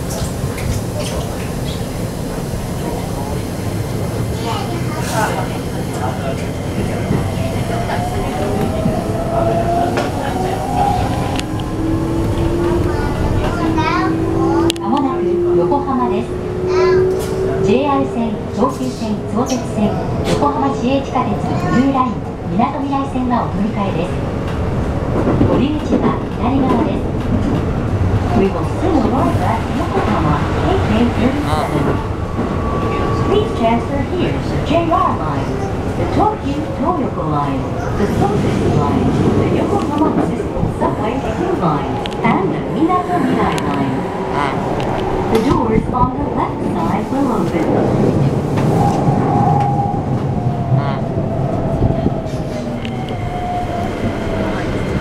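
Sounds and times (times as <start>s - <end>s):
train wheels rumbling: 0.0s - 55.0s.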